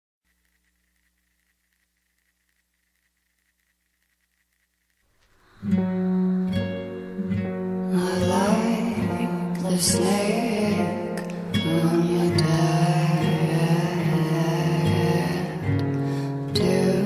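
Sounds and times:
plucked guitar chords: 5.6 - 17.0
woman singing softly: 5.7 - 15.8, 16.5 - 17.0.

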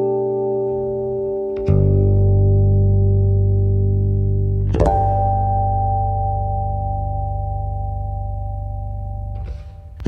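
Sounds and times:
fretless bass chord ringing: 0.0 - 10.0.

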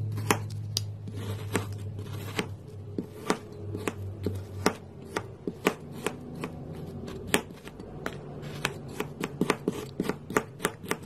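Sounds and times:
knife chopping on hard surface: 0.1 - 11.0.

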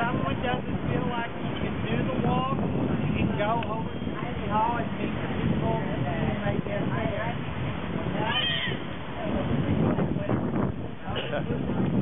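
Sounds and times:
crowd chatter: 0.0 - 12.0
high-pitched cry: 8.2 - 8.8.

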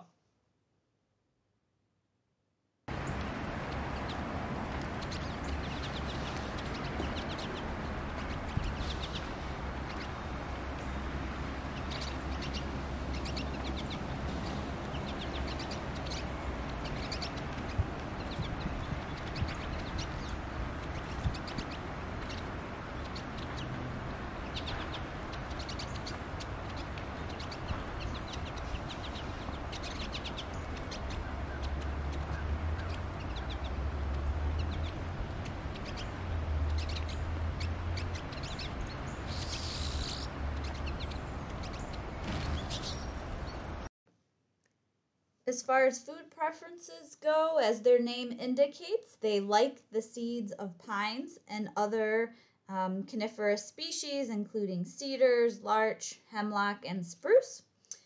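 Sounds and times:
birds twittering: 2.9 - 43.9.

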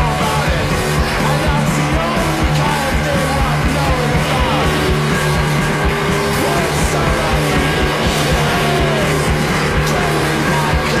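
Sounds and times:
distorted electric guitars: 0.0 - 11.0
steady drum beat: 0.0 - 11.0.

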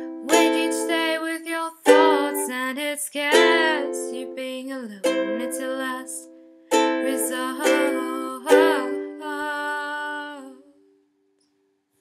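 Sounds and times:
ukulele strum ringing: 0.0 - 1.2, 1.8 - 2.6, 5.0 - 9.5.

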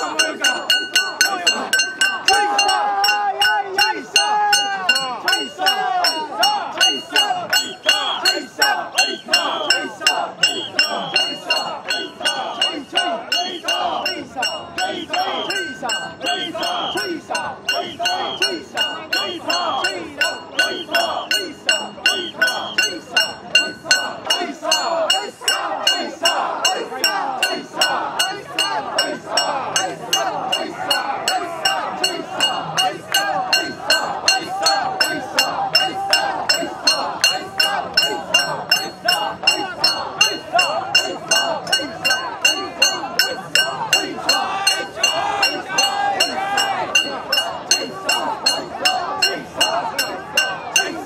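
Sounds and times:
crowd chanting in rhythm: 0.0 - 51.0.

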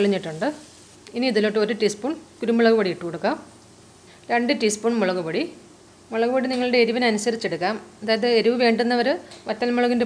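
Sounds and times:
woman narrating: 0.0 - 3.5, 4.2 - 10.0
faint sizzle of frying: 0.0 - 10.0.

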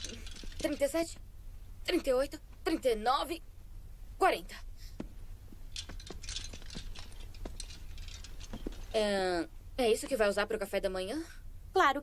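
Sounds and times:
footsteps on carpet: 5.0 - 8.9
light taps clicks and rustling: 5.0 - 8.9.

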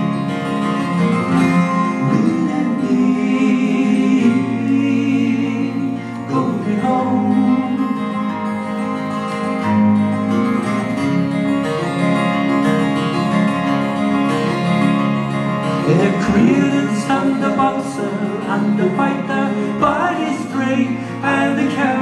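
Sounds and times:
acoustic guitars strummed and picked: 0.0 - 22.0
man singing: 1.7 - 8.3, 15.8 - 22.0.

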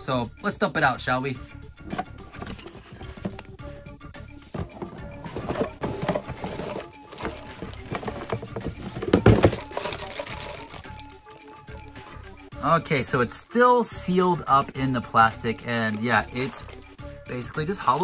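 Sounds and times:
background music with held notes: 0.0 - 18.0
cardboard box rustling: 1.9 - 3.5, 4.5 - 12.0, 15.3 - 17.0, 17.8 - 18.0
plastic bag crinkling: 5.3 - 11.9, 15.4 - 17.0, 17.8 - 18.0.

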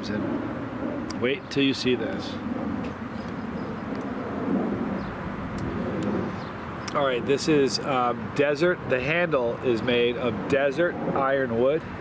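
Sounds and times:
distant engine rumble: 0.0 - 12.0.

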